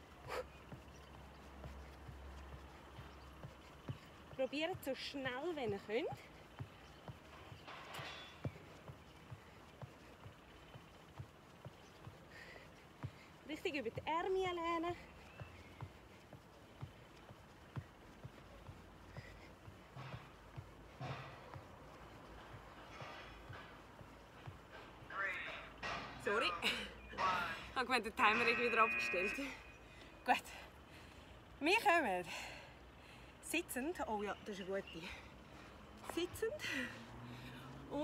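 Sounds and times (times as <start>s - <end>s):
woman breathing heavily: 0.0s - 4.3s, 8.5s - 13.5s, 14.9s - 24.7s, 29.8s - 31.6s, 32.2s - 33.4s, 35.0s - 37.9s.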